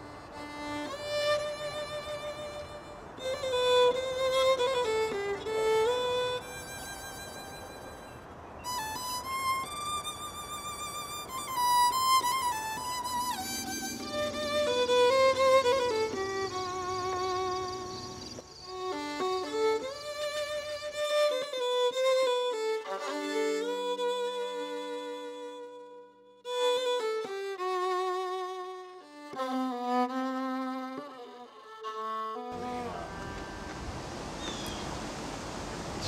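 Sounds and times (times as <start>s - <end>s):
outdoor background noise: 0.0s - 36.0s
solo violin slow melody: 0.0s - 36.0s.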